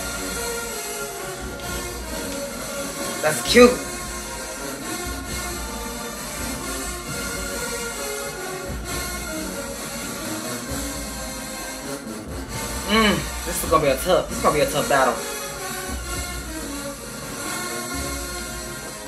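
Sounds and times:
distant marching band playing: 0.0 - 19.0
man's voice: 3.2 - 3.9, 12.8 - 15.2.

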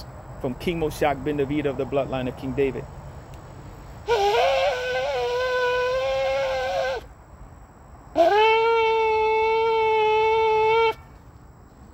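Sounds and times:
shofar blasts: 4.1 - 7.0.

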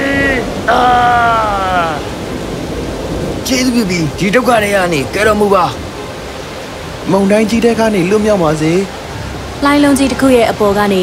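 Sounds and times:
rain hissing: 0.0 - 11.0.

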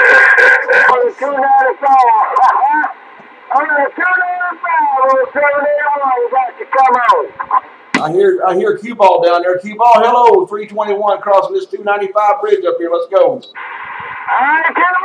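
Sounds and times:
radio static burst: 0.0 - 4.4, 13.5 - 15.0
narrow-band radio voice: 0.0 - 8.7, 14.2 - 15.0.

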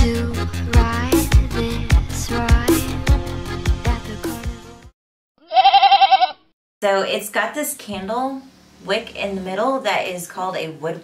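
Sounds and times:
goat bleating: 5.4 - 6.5.

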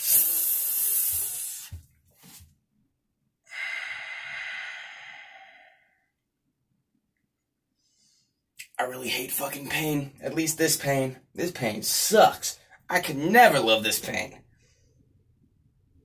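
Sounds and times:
long breathy exhale: 3.5 - 6.1.

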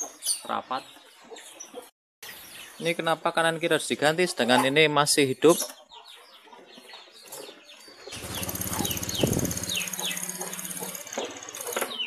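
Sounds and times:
bird chirps: 5.4 - 12.0
scooter engine running: 8.1 - 12.0.

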